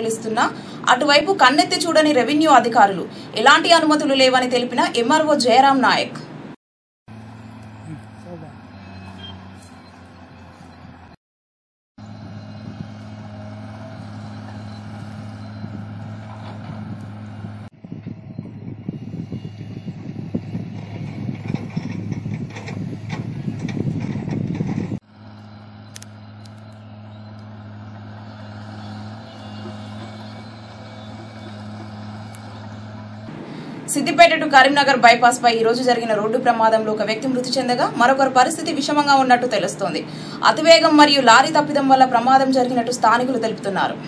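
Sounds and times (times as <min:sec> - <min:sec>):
distant diesel engines humming: 0:00.0 - 0:06.5, 0:07.1 - 0:11.2, 0:12.0 - 0:44.0.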